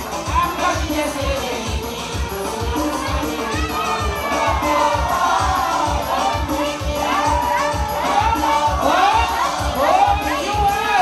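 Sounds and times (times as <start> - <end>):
amplified dance music: 0.0 - 11.0
crowd shouting and cheering: 0.0 - 11.0
person singing: 0.0 - 11.0.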